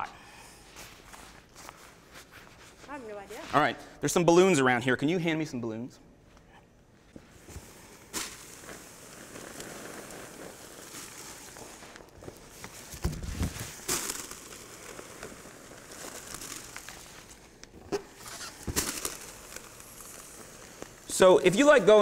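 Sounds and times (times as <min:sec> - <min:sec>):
steady hiss: 0:07.0 - 0:22.0
rubber balloons squeaking: 0:08.0 - 0:22.0.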